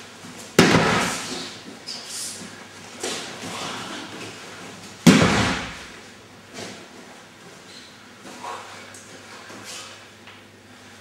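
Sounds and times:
body thudding on a mat: 0.6s - 1.4s, 5.0s - 5.9s.

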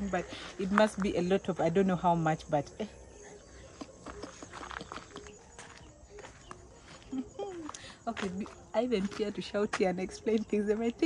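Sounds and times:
footsteps on dirt road: 0.0s - 2.2s, 3.2s - 11.0s.

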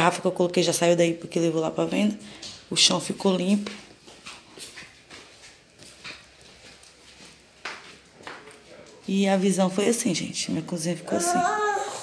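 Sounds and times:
footsteps on tiled floor: 1.8s - 9.8s.

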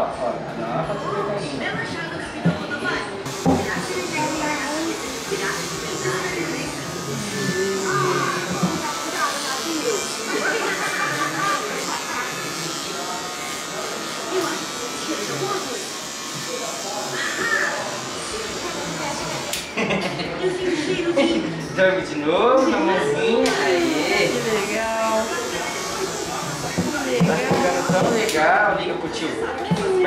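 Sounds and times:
voices: 1.6s - 21.4s
electric hair clippers running: 3.3s - 19.8s, 23.4s - 28.4s.

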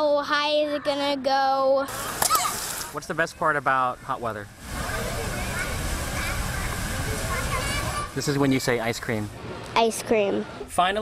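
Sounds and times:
fountain water jets rushing: 1.9s - 10.0s
faint children's voices: 4.8s - 8.3s.

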